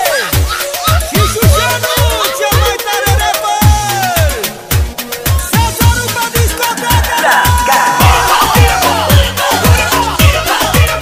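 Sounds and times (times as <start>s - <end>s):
electronic dance music: 0.0s - 11.0s
hi-hats: 0.0s - 11.0s.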